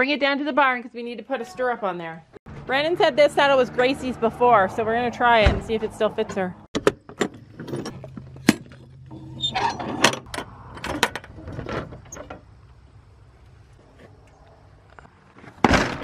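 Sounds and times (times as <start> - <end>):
metal latch clanking and rattling: 6.8 - 12.5.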